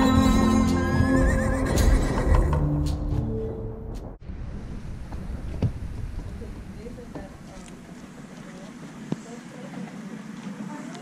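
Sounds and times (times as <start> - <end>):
music: 0.0 - 4.2
horse whinny: 0.8 - 2.7.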